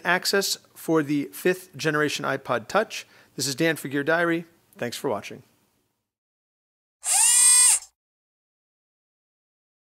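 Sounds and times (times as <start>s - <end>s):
whirring machine-like logo tone: 7.0s - 7.9s.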